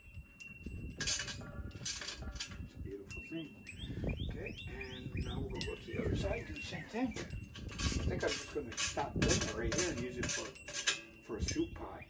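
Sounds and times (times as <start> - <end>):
metal clicks and clinks: 0.0 - 3.8, 7.2 - 11.7
small birds chirping: 2.5 - 9.2.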